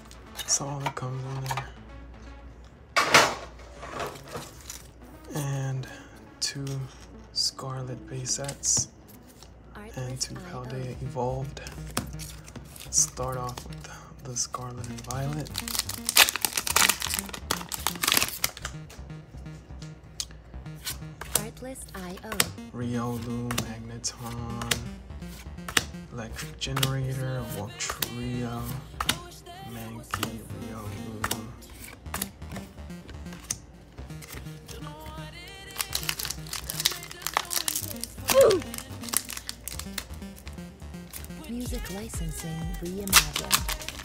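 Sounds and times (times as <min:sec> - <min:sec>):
background music with beat: 0:10.4 - 0:44.0
foil wrapper tearing and crinkling: 0:14.9 - 0:18.7, 0:35.8 - 0:40.0, 0:43.0 - 0:44.0.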